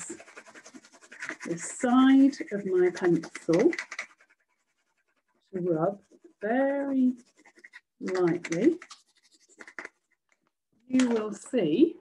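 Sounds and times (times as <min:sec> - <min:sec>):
pencil scratching on paper: 0:00.0 - 0:10.3.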